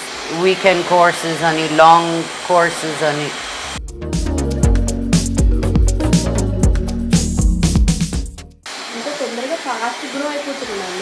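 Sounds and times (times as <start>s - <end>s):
person talking: 0.0s - 3.4s
hair dryer blowing: 0.0s - 3.8s, 8.7s - 11.0s.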